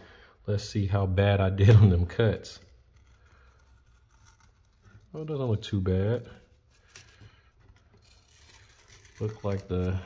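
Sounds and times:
masking tape peeling off plastic: 1.6s - 10.0s.

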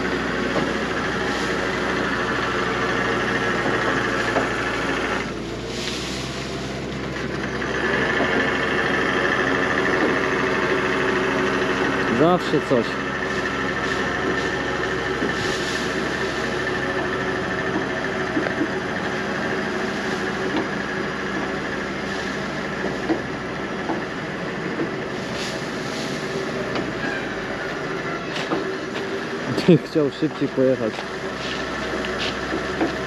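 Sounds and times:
tractor engine running: 0.0s - 33.0s.

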